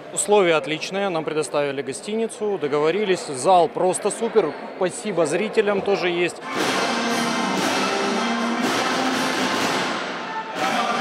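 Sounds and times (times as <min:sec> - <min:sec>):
music with held notes: 0:06.4 - 0:11.0.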